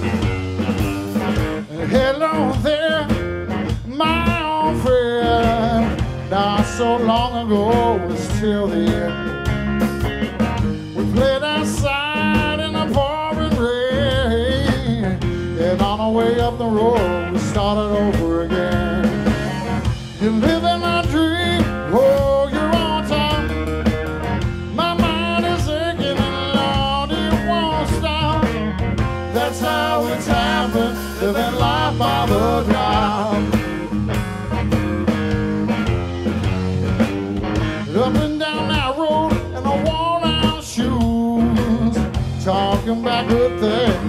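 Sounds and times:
bass guitar: 0:00.0 - 0:44.0
drums: 0:00.0 - 0:44.0
electric guitar melody: 0:00.0 - 0:44.0.

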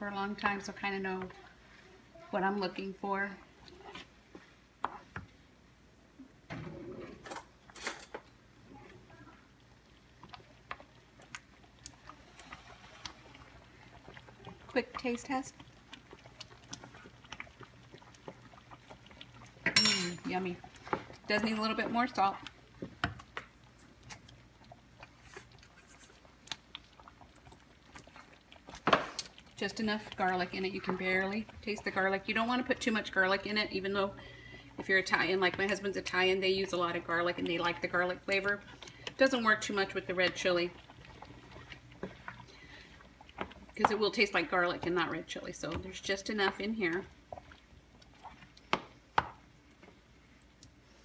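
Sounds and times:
wooden spoon stirring chili: 0:00.0 - 0:05.5, 0:08.1 - 0:51.0.

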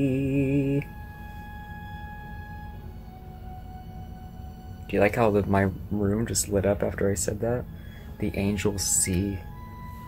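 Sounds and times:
low hum: 0:00.0 - 0:10.0
soft sustained music: 0:00.0 - 0:10.0.

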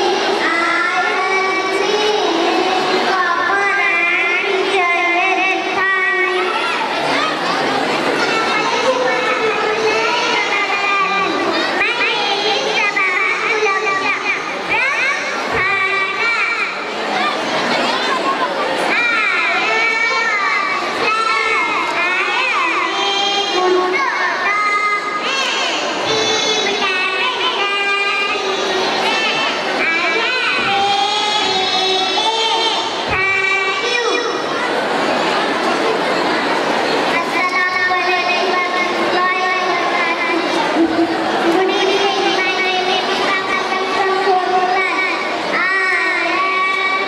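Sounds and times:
child speaking into a microphone: 0:00.0 - 0:47.0
crowd noise: 0:00.0 - 0:47.0.

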